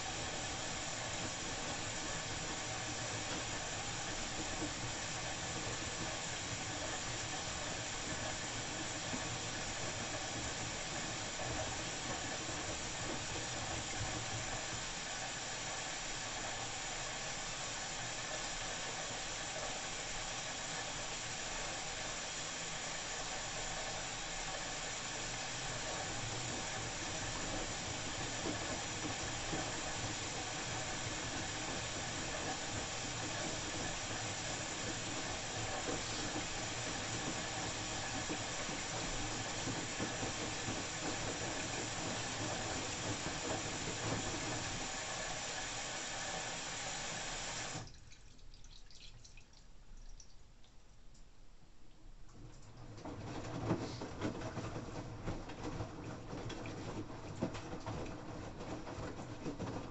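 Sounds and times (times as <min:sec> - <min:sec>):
laundry sloshing in drum: 0:00.0 - 0:49.4, 0:52.4 - 0:59.9
water rushing into washing machine: 0:00.0 - 0:50.3, 0:52.4 - 0:59.9.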